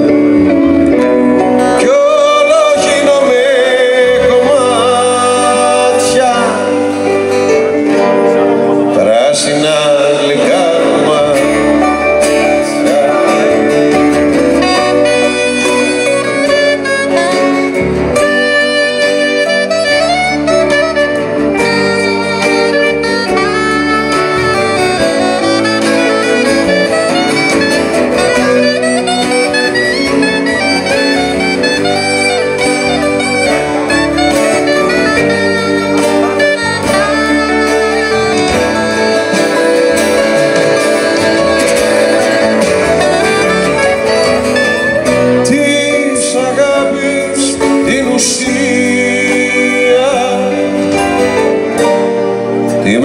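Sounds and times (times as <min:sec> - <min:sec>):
acoustic guitar: 0:00.0 - 0:53.0
lead melody with gliding notes: 0:00.0 - 0:53.0.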